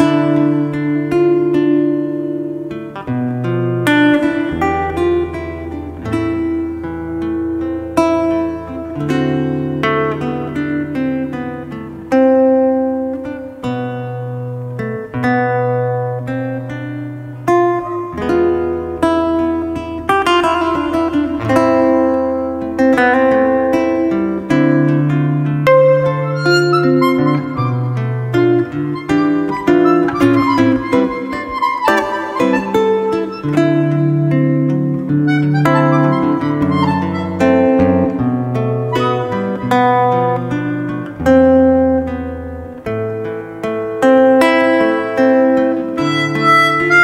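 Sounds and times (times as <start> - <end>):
fingerpicked acoustic guitar: 0.0 - 47.0.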